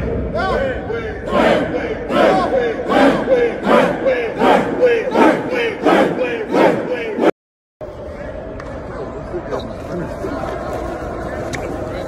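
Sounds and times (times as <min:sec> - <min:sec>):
players shouting in unison: 0:00.3 - 0:07.3.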